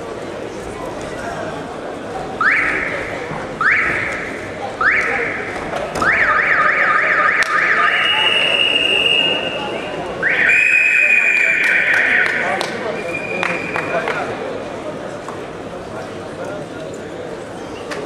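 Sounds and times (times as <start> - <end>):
hall noise: 1.4 - 15.0
shrill whistles: 7.7 - 12.2, 13.0 - 14.1.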